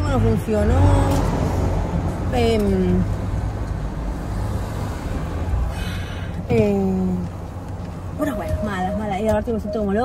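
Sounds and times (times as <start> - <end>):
car cabin engine and road rumble: 0.0 - 4.4, 5.1 - 10.0.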